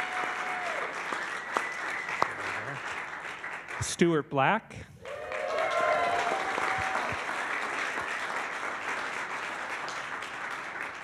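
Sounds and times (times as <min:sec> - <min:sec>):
congregation applauding: 0:00.0 - 0:04.2, 0:05.0 - 0:11.0.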